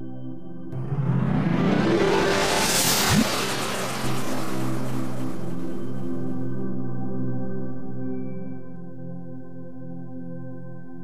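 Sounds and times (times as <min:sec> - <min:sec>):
ambient music drone: 0:00.0 - 0:11.0
whoosh effect: 0:00.8 - 0:06.6
sweeping low tone: 0:00.8 - 0:07.3.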